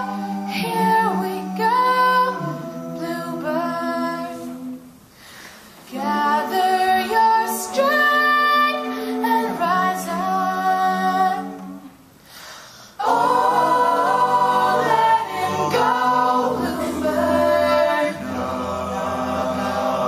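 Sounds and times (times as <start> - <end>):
choir singing close harmony: 0.0 - 5.0, 5.9 - 12.0, 13.0 - 20.0.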